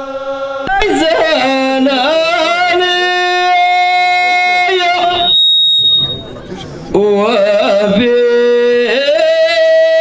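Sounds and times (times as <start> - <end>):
man singing a long note: 0.0 - 5.4, 6.9 - 10.0
microphone feedback whistle: 5.0 - 6.6.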